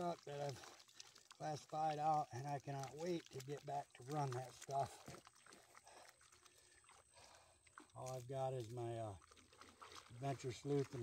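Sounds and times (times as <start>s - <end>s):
water sloshing: 0.0s - 11.0s.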